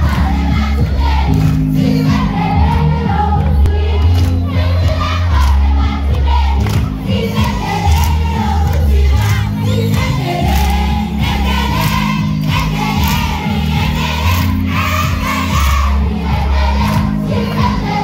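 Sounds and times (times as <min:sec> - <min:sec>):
children singing and shouting: 0:00.0 - 0:18.0
loud music with heavy bass: 0:00.0 - 0:18.0.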